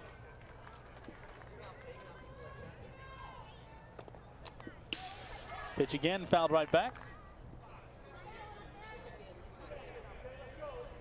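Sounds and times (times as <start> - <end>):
ball rattling chain-link fence: 4.9 - 7.0.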